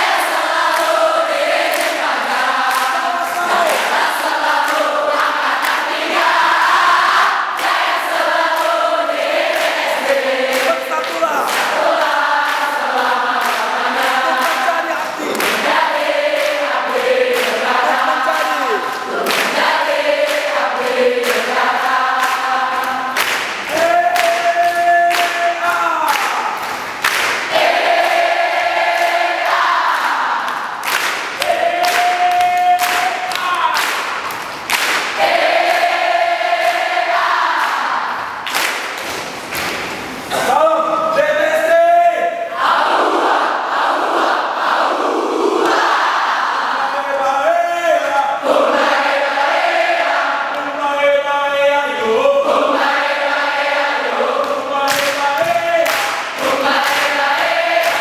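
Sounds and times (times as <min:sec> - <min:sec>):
group singing a cheer chant: 0:00.0 - 0:39.1, 0:40.2 - 0:58.0
hands clapping: 0:00.0 - 0:40.5, 0:45.6 - 0:45.8, 0:54.3 - 0:58.0.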